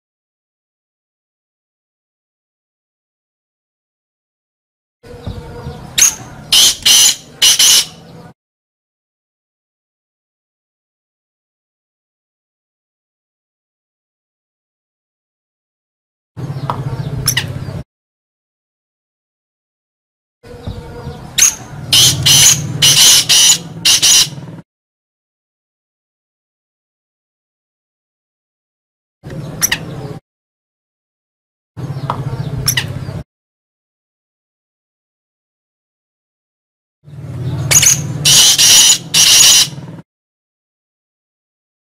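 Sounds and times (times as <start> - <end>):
bird calling high notes: 6.0 - 8.2, 21.4 - 24.5, 37.7 - 39.9.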